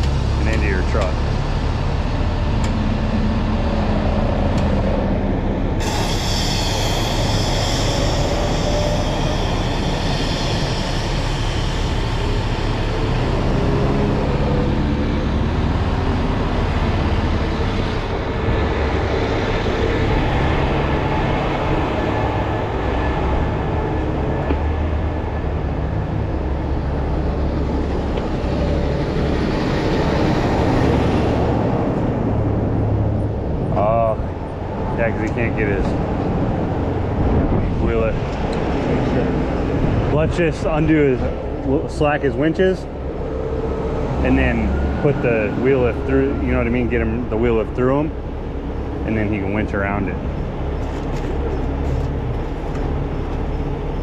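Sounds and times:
diesel engines rumbling: 0:00.0 - 0:54.0
hiss: 0:05.8 - 0:12.7.

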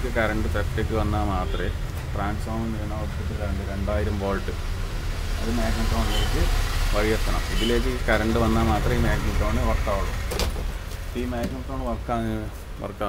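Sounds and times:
man talking: 0:00.0 - 0:04.6, 0:05.4 - 0:10.2, 0:11.1 - 0:13.0.

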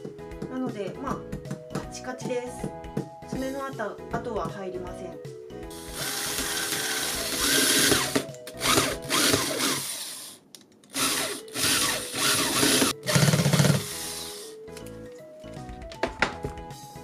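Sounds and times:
electric drill driving screws: 0:05.7 - 0:14.6.

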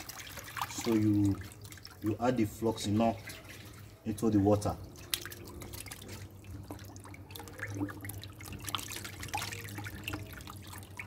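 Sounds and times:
low steady hum: 0:00.0 - 0:11.0
water dripping and splashing in bucket: 0:00.0 - 0:11.0.

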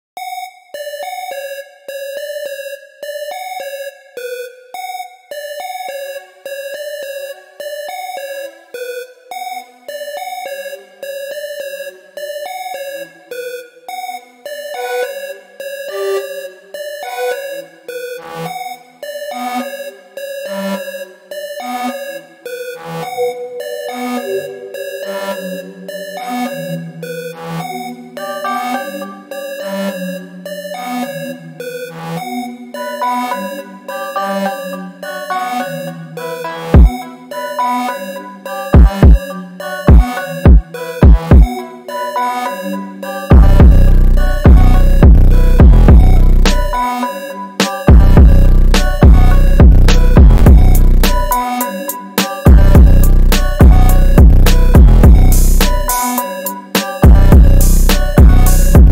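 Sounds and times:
looping synthesizer melody: 0:00.2 - 0:58.9.

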